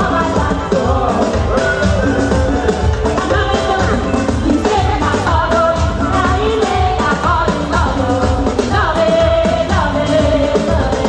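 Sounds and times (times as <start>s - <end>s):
woman singing into microphone: 0.0s - 2.3s, 2.9s - 11.0s
drums: 0.0s - 11.0s
keyboard: 0.0s - 11.0s.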